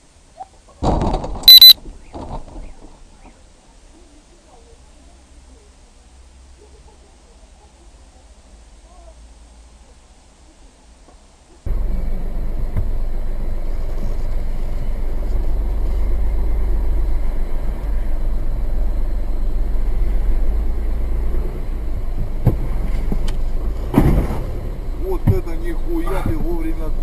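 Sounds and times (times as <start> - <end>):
car engine low rumble: 0.0 - 27.0.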